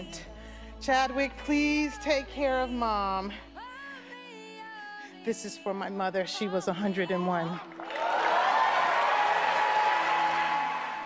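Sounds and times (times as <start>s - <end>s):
faint music: 0.0s - 11.0s
audience applauding: 7.6s - 11.0s.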